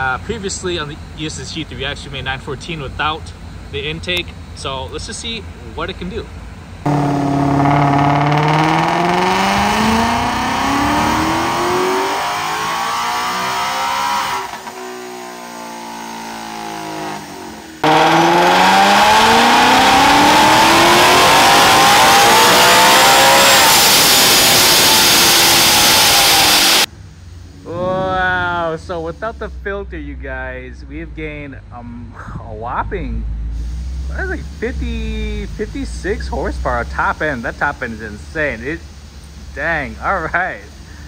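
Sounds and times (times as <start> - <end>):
supercharger whine: 0.0 - 30.2
car engine revving at full throttle: 6.8 - 26.9.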